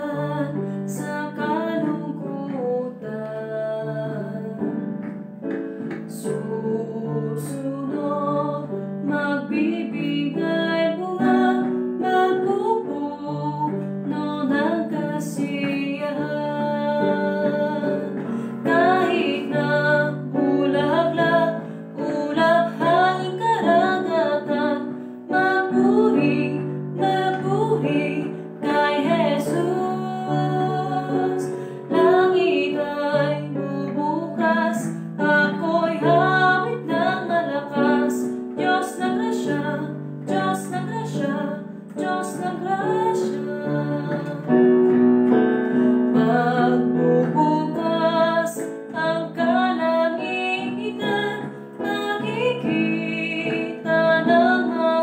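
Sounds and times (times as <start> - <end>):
woman singing worship song: 0.0 - 5.1, 5.9 - 55.0
electronic keyboard chords: 41.2 - 54.7.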